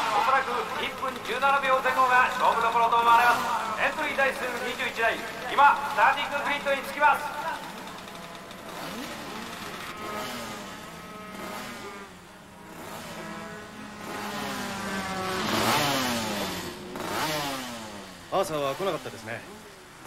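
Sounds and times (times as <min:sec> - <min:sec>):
racing motorcycles revving past: 0:00.0 - 0:20.0.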